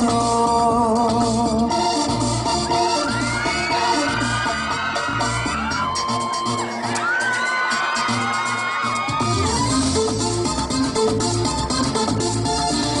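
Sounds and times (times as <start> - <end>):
dance music with steady beat: 0.0 - 13.0
audience cheering and whooping: 2.7 - 10.1.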